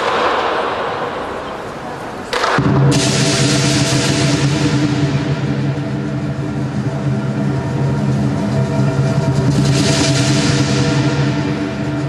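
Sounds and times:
drum gong and cymbals playing: 0:02.6 - 0:12.0.

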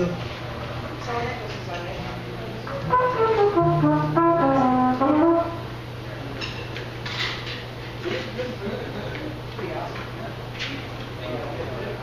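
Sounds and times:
jazz horn playing: 0:02.7 - 0:06.0
upright bass note: 0:02.8 - 0:05.6.

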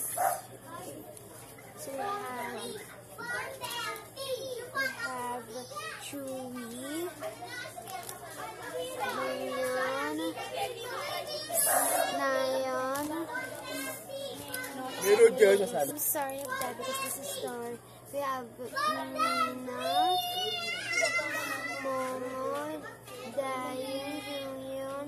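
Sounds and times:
children talking: 0:00.0 - 0:25.0.

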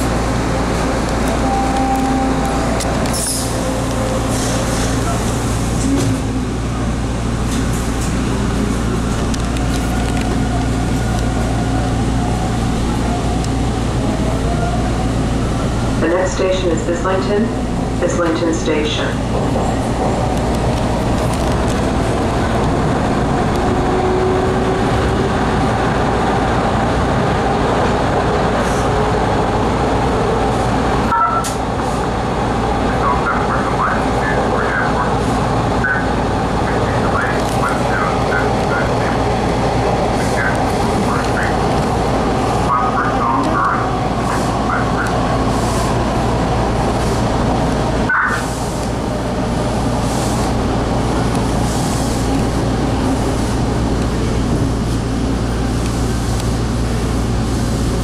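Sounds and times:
subway train rumbling in tunnel: 0:00.0 - 0:58.0.

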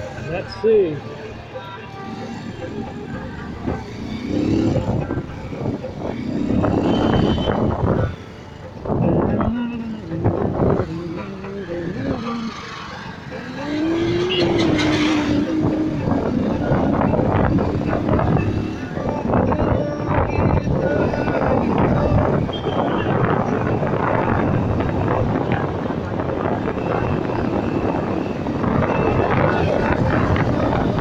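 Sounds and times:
motorbike engine accelerating: 0:02.0 - 0:08.2, 0:09.4 - 0:19.9.

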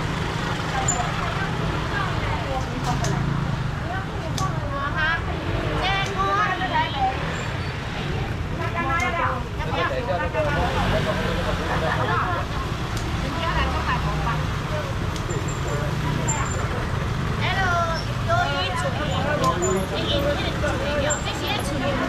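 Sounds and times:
low rumble of traffic: 0:00.0 - 0:22.0
people talking indistinctly: 0:00.0 - 0:22.0.

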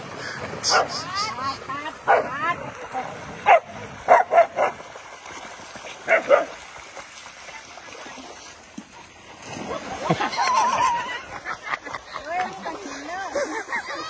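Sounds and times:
water splashing: 0:00.0 - 0:14.0
dogs barking and yipping: 0:00.6 - 0:01.4, 0:02.0 - 0:02.5, 0:03.4 - 0:04.8, 0:06.1 - 0:06.6.

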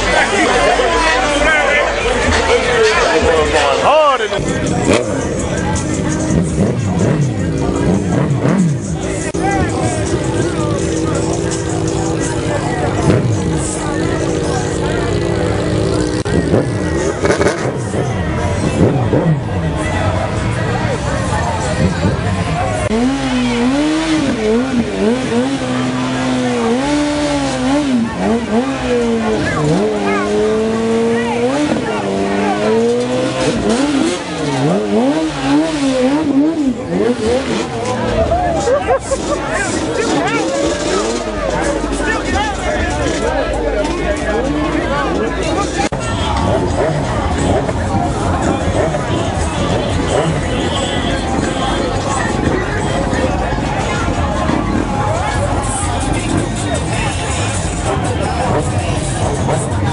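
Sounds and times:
crowd voices: 0:00.0 - 0:59.9
motorcycle engines revving: 0:00.0 - 0:59.9.

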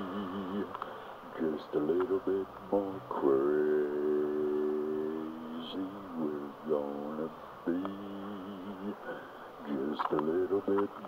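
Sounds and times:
person humming wordless notes: 0:00.0 - 0:00.8, 0:02.9 - 0:11.0.

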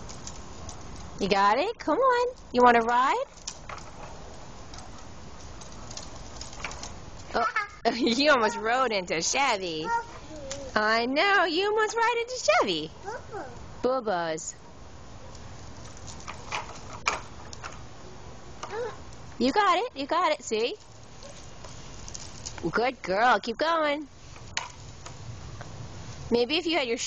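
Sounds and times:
plastic wheels rolling over concrete: 0:00.0 - 0:12.6, 0:15.3 - 0:17.8, 0:18.6 - 0:25.2.

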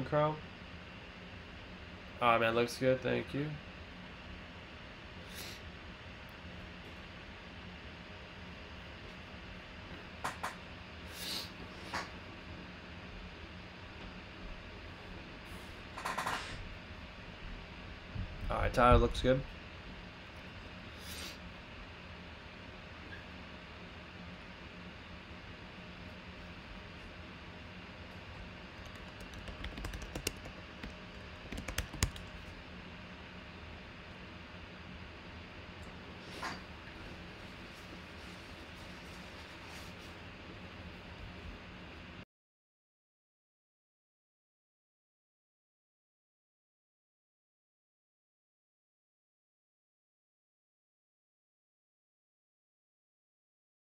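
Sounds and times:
room hum and hiss: 0:00.0 - 0:42.2
sharp clicks: 0:28.8 - 0:32.3.

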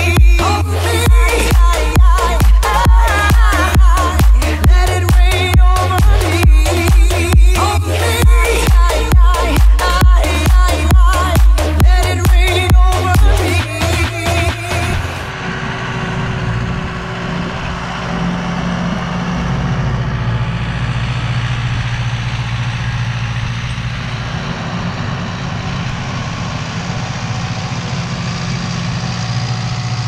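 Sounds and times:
dance music: 0:00.0 - 0:15.4
tractor diesel engine under load: 0:00.0 - 0:30.0.

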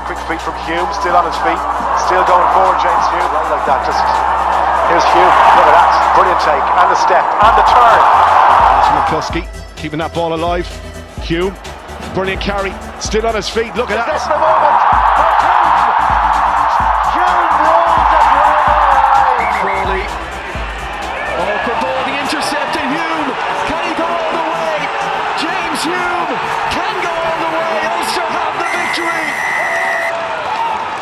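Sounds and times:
stadium crowd cheering: 0:00.0 - 0:09.3, 0:11.2 - 0:31.0
background music with steady beat: 0:00.0 - 0:29.3
broadcast commentary: 0:00.0 - 0:29.8.

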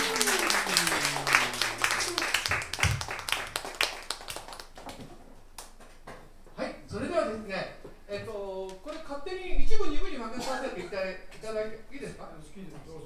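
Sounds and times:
audience applauding: 0:00.0 - 0:05.8.

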